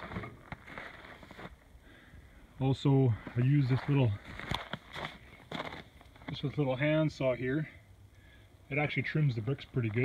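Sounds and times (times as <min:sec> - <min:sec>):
faint background noise: 0:00.0 - 0:10.0.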